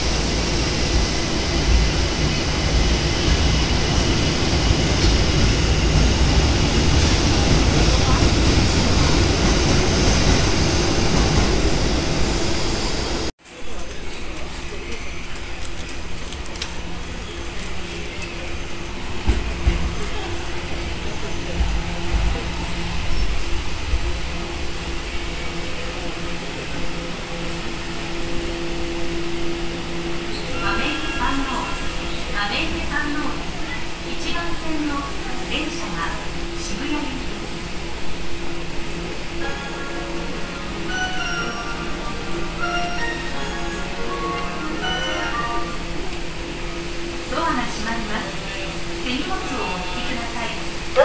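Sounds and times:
train rumbling: 0.0s - 51.0s.

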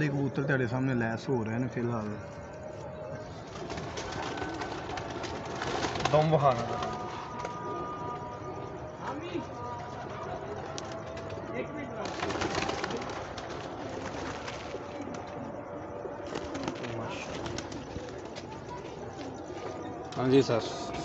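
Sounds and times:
pigeons cooing: 3.1s - 8.3s, 12.0s - 21.0s
rustling of birds being handled: 3.4s - 7.8s, 9.9s - 15.5s, 16.2s - 21.0s.

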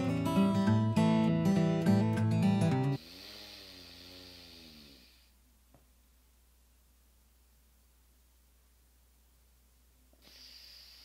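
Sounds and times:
woman exhaling through nostril: 3.0s - 5.3s, 10.2s - 11.0s.

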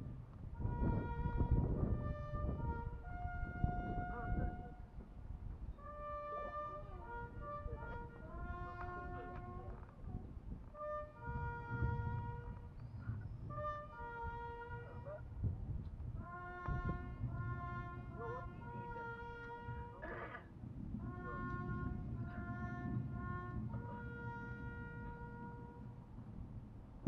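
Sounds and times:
distant brass instrument melody: 0.0s - 5.0s, 5.7s - 15.4s, 16.1s - 26.6s.

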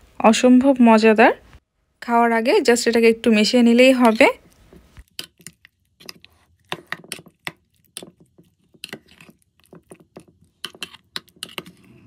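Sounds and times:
metal spoon stirring in steel bowl: 3.9s - 12.0s.

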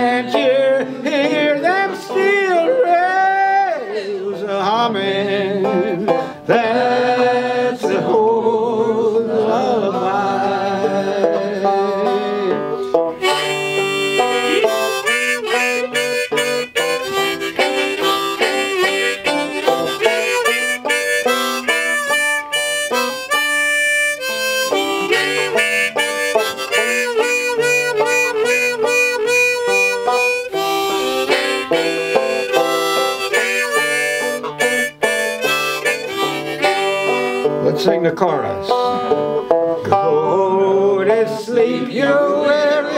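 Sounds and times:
picked banjo: 0.0s - 42.9s
harmonica playing: 11.2s - 40.2s.

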